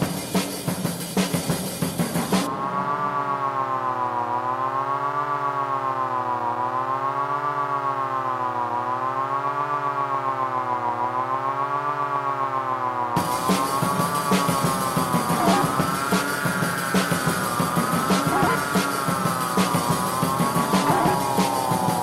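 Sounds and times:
siren-like electronic drone: 2.0 - 22.0.

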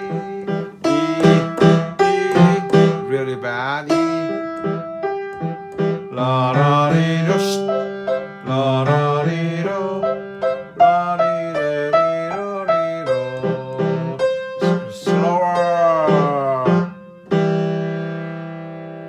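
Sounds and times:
person singing wordlessly: 0.0 - 5.0, 5.9 - 17.0
upright piano playing: 0.0 - 19.0.

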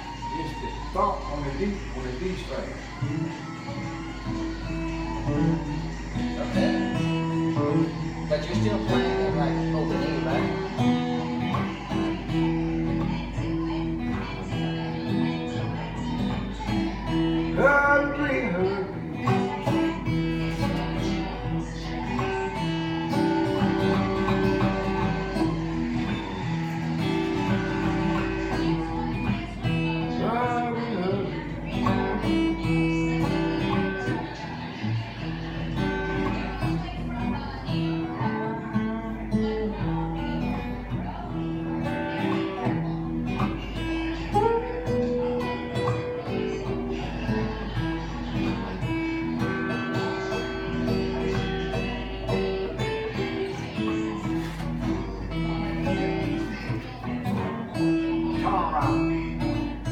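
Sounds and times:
acoustic guitar blues accompaniment: 0.0 - 59.9
guitar melody with pitch bends: 0.0 - 59.9.

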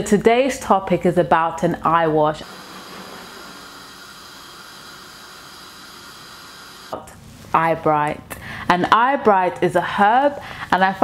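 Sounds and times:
gas stove burner hissing: 2.4 - 7.0.

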